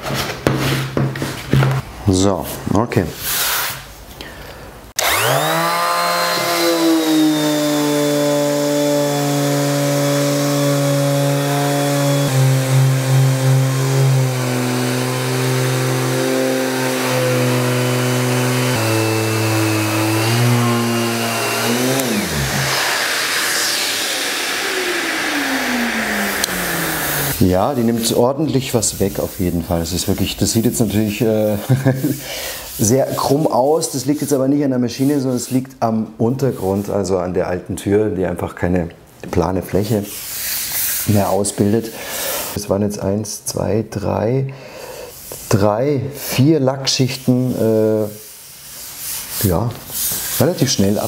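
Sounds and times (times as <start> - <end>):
sander winding down whine: 5.0 - 27.4
orbital sander humming: 5.0 - 28.0.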